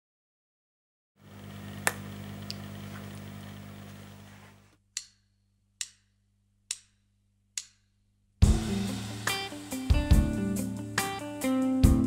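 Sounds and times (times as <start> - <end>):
low electrical hum: 1.2 - 4.8
drumsticks clicking: 5.8 - 6.1, 6.7 - 7.0, 7.6 - 7.8.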